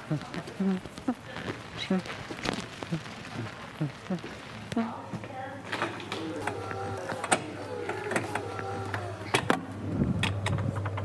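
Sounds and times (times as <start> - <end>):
door mechanism clicking: 5.7 - 9.6.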